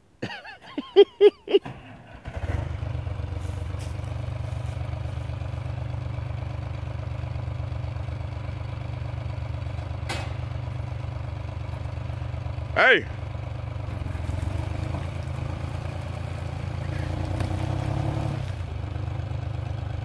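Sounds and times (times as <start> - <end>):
diesel engine starting and running: 1.2 - 20.0.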